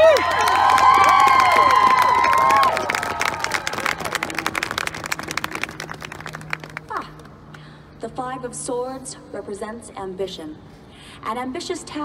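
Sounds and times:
crowd applauding and cheering: 0.0s - 7.0s.

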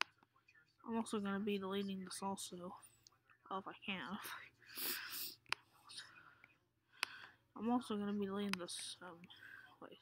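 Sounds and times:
breathy whisper: 4.2s - 7.5s, 9.2s - 10.0s.

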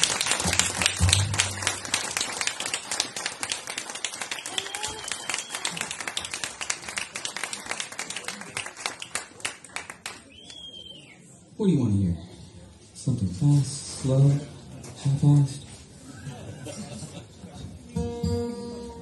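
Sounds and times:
audience applauding: 0.0s - 10.8s.

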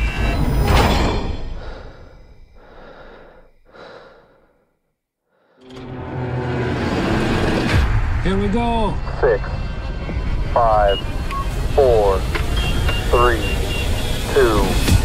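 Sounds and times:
breathing sounds: 1.5s - 5.6s
loud dense rumble: 6.9s - 15.0s
low steady drone: 7.0s - 15.0s.

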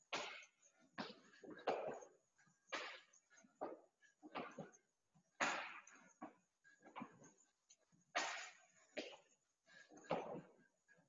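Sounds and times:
man breathing hard: 0.1s - 11.0s.

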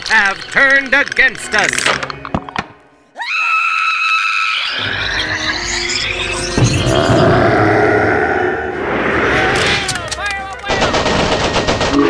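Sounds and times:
music: 0.0s - 3.3s, 4.7s - 8.0s
person screaming in terror: 3.2s - 4.8s
low rumbling din: 5.2s - 10.2s.

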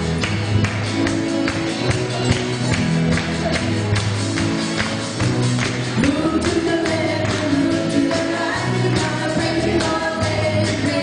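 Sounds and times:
guitar: 0.0s - 11.0s
people singing: 6.0s - 11.0s.

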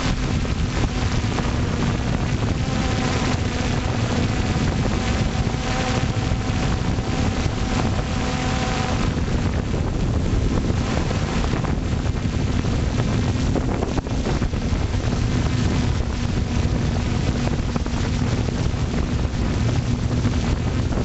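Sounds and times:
drone electric motors humming: 0.0s - 21.0s
wind buffeting microphone: 0.0s - 21.0s.

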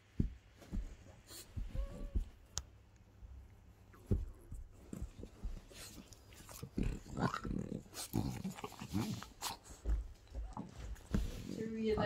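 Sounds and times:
dog growling: 6.4s - 11.0s.

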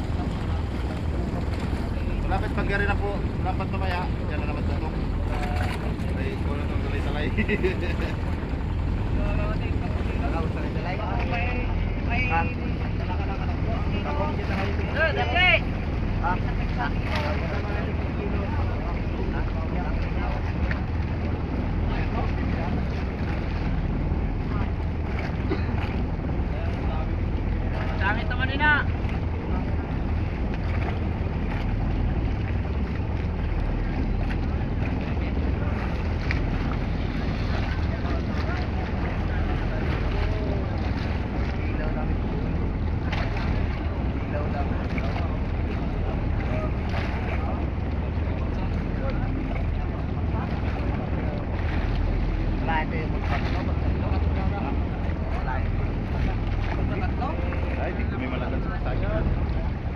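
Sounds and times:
water moving around boat: 0.0s - 59.9s.

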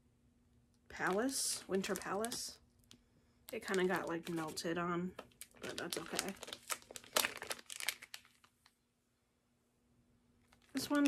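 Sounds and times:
plastic packaging crinkling: 1.0s - 8.8s, 10.4s - 11.0s.

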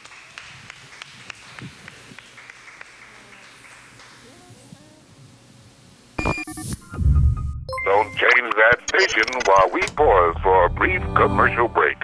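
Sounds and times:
faint background clapping: 0.0s - 4.3s.

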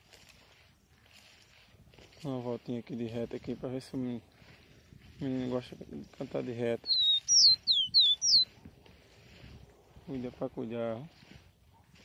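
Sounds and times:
bird whistling downward notes: 6.8s - 8.5s.

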